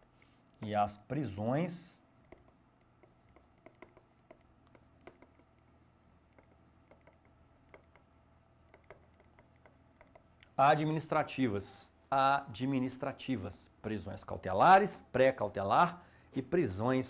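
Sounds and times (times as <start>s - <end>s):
low room hum: 0.0s - 17.0s
pen writing taps and scratches: 2.2s - 10.4s.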